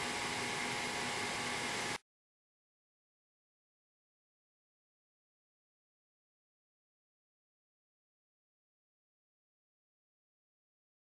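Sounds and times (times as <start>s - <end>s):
faint hum: 0.0s - 2.0s
room tone hiss: 0.0s - 2.0s.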